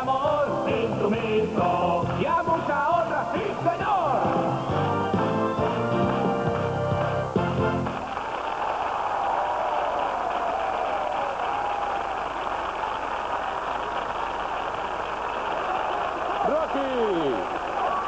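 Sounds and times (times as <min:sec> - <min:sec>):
studio audience applauding: 0:02.1 - 0:18.0.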